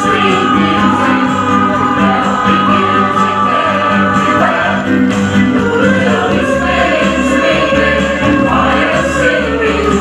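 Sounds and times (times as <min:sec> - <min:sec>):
choir singing: 0:00.0 - 0:10.0.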